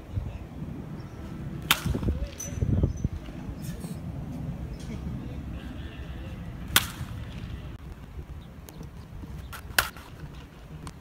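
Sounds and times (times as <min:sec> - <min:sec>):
low background rumble: 0:00.0 - 0:11.0
baseball bat cracking ball: 0:01.6 - 0:03.4, 0:06.4 - 0:07.8, 0:09.5 - 0:10.4.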